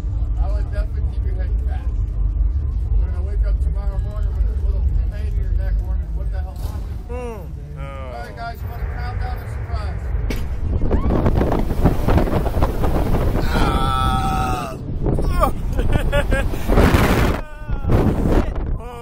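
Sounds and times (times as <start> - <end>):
person yelling and groaning: 7.1 - 8.2, 13.4 - 15.8, 17.2 - 19.0
wind buffeting microphone: 8.3 - 19.0
person crying out: 13.4 - 16.5, 17.2 - 18.1, 18.7 - 19.0.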